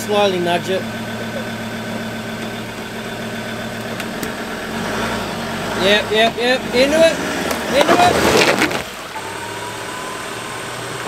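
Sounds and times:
engine running at low revs: 0:00.0 - 0:11.0.

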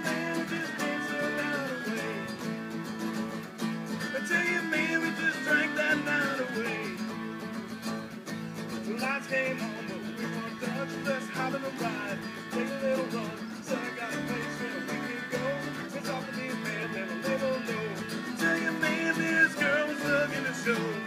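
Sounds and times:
melodica lead line: 0:00.0 - 0:21.0
sliding lap guitar notes: 0:00.0 - 0:21.0
strummed acoustic guitars: 0:00.0 - 0:21.0.

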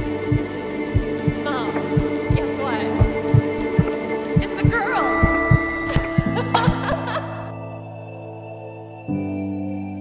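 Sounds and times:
heartbeat-like low thumps: 0:00.0 - 0:07.0
droning film score: 0:00.0 - 0:09.4.

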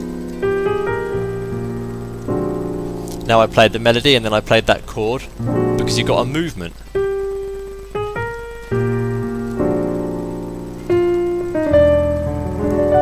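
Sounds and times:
digital piano jazz phrase: 0:00.0 - 0:13.0.

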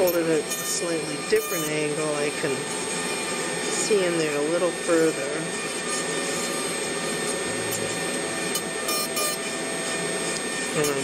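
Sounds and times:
power carving tool running: 0:00.0 - 0:11.0.

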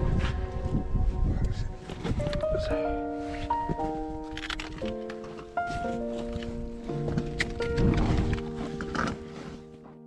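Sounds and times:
background music with held notes: 0:00.0 - 0:10.0
footsteps on rocky trail: 0:00.0 - 0:10.0
trekking poles clicking on rock: 0:07.1 - 0:09.3.

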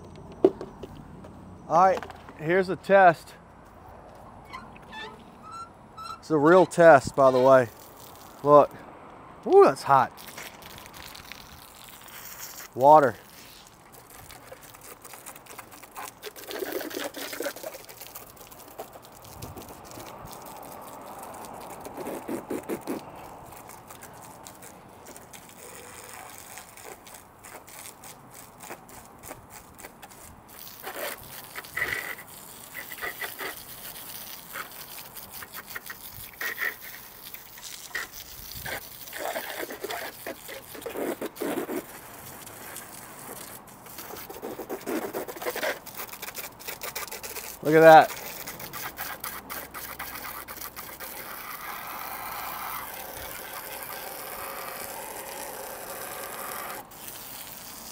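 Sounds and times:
water hose spraying: 0:04.8 - 0:08.8, 0:09.4 - 0:57.9
water splashing bursts: 0:04.8 - 0:57.9
water spattering on scooter: 0:06.8 - 0:08.7, 0:09.9 - 0:57.9.

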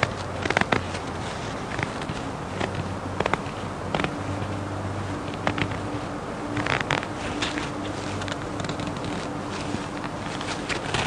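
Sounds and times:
steady low buzz: 0:00.0 - 0:11.0.

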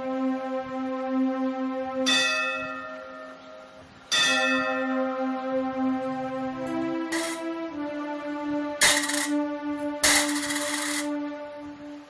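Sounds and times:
background music with held tone: 0:00.0 - 0:12.0
coins clinking on steel plate: 0:10.0 - 0:11.1.

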